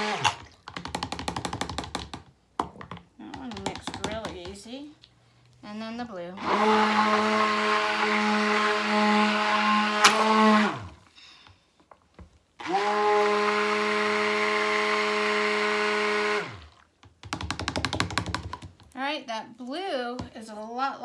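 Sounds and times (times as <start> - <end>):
stick blender running: 0.0 - 0.5, 6.4 - 11.0, 12.6 - 16.6.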